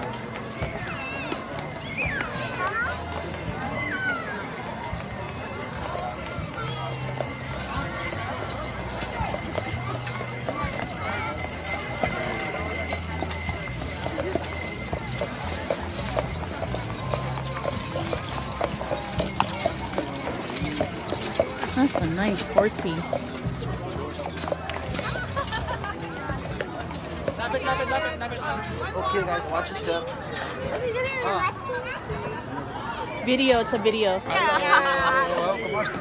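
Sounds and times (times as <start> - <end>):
horse hooves clip-clopping: 0.0 - 28.0
background music: 4.4 - 28.2.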